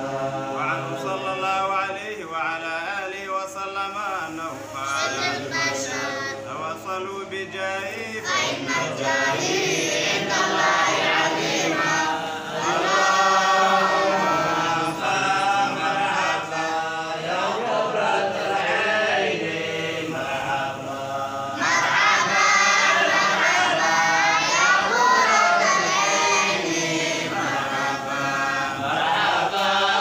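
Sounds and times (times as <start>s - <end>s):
voices chanting in unison: 0.0s - 30.0s.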